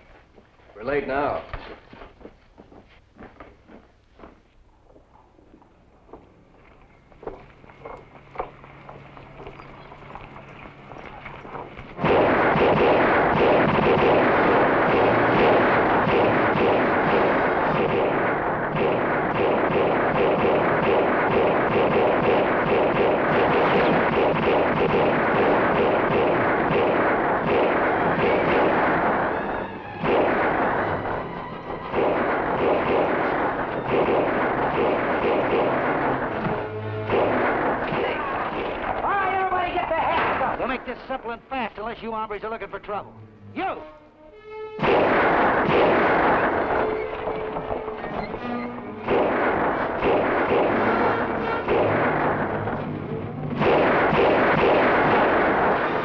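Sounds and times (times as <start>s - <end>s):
galloping hooves: 1.4s - 12.0s
dramatic music score: 7.6s - 39.5s, 42.9s - 56.0s
rapid gunshots: 12.0s - 31.2s, 31.8s - 40.9s, 44.8s - 48.3s, 49.0s - 52.8s, 53.6s - 56.0s.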